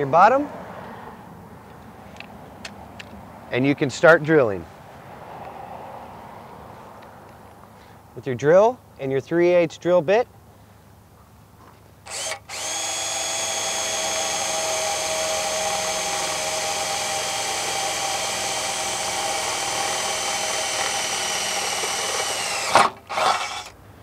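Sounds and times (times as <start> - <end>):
electric drill boring through metal: 12.1 - 23.7.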